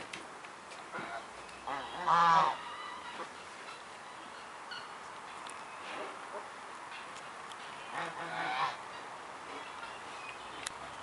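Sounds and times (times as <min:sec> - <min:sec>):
quiet outdoor background: 0:00.0 - 0:11.0
honking animal call: 0:01.0 - 0:03.3, 0:07.9 - 0:09.0.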